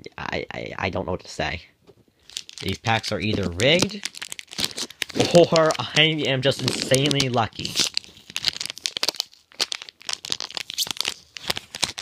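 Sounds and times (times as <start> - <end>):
foil wrapper crinkling: 2.2 - 12.0.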